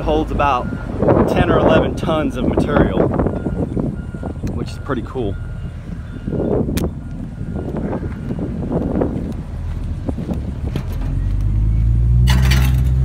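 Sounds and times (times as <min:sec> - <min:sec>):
large engine humming: 0:00.0 - 0:13.0.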